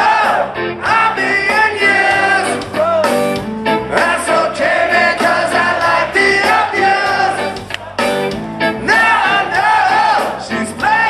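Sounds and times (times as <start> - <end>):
bass guitar: 0.0 - 11.0
man singing: 0.8 - 3.1, 8.8 - 11.0.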